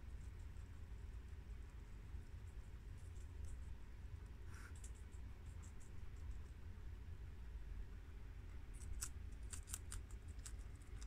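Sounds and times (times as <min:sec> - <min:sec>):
guinea pigs chewing lettuce: 0:08.5 - 0:11.0.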